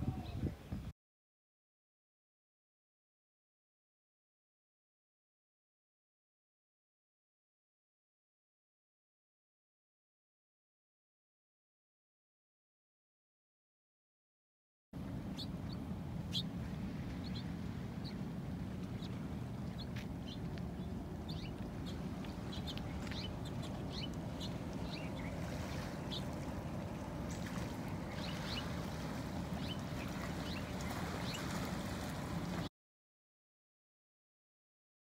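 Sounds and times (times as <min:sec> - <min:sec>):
small birds chirping: 0:15.3 - 0:32.7.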